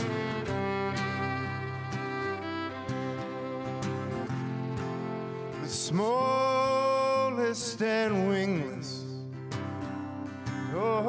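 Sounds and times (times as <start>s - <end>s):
country folk band with fiddle: 0.0s - 8.6s.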